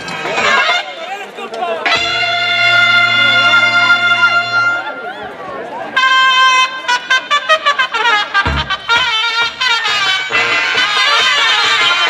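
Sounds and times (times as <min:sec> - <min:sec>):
brass band music: 0:00.2 - 0:01.1, 0:01.8 - 0:05.0, 0:06.0 - 0:12.0
quick trumpet notes: 0:01.8 - 0:05.0, 0:06.0 - 0:12.0
low drum hit: 0:08.5 - 0:09.8.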